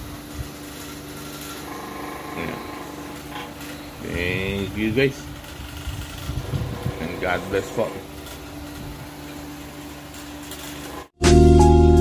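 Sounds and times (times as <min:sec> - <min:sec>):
electric fan motor hum: 0:00.0 - 0:11.2.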